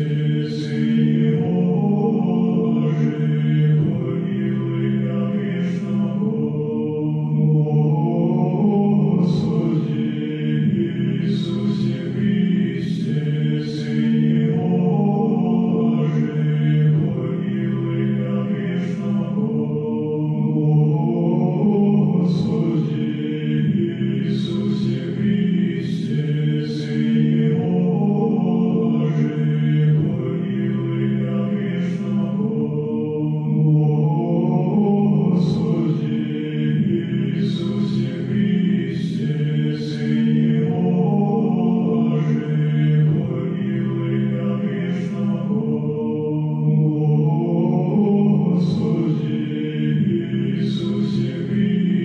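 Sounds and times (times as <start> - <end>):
slow vocal chant: 0.0 - 52.0.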